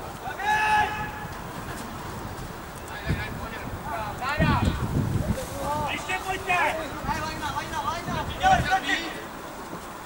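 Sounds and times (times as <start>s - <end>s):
players shouting: 0.2s - 1.4s.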